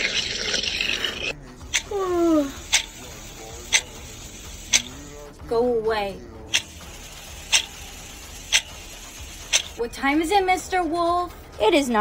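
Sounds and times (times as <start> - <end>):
sharp even clicks: 8.5 - 8.8.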